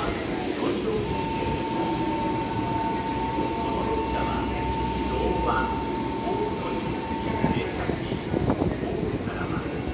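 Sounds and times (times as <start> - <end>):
faint high squeal: 0.0 - 9.9
steady whine: 0.0 - 9.9
train wheels rumbling on rails: 0.0 - 9.9.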